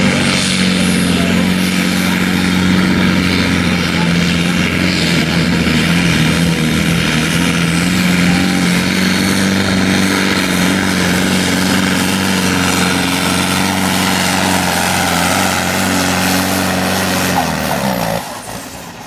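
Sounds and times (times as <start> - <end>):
diesel tractor engine under load: 0.0 - 19.0.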